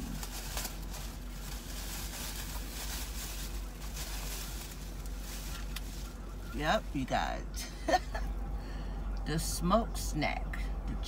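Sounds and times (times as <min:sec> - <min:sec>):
plastic snack packaging crinkling: 0:00.0 - 0:06.4
low steady hum: 0:00.0 - 0:11.0.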